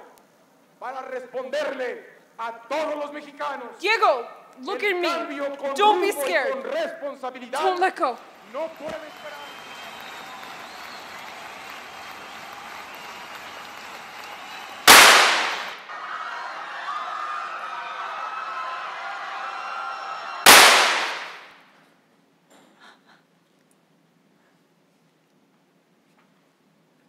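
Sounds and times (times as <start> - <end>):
crowd noise: 7.6 - 21.5
loud gunshots: 14.9 - 15.9, 20.5 - 21.6.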